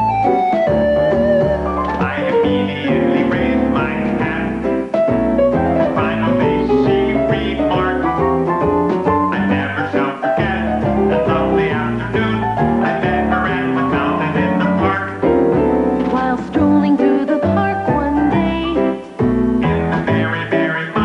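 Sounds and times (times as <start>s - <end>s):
upbeat jukebox music: 0.0s - 21.0s.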